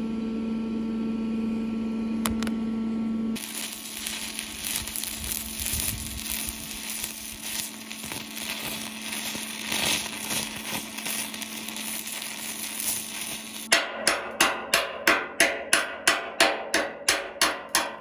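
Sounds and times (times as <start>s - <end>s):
crackling welding arc: 3.4s - 13.7s
hammer chipping at weld: 3.9s - 18.0s.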